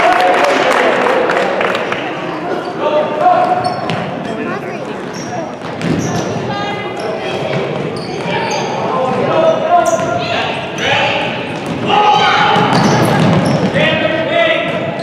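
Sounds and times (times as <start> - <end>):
sneakers squeaking: 2.4 - 11.8, 12.4 - 14.0.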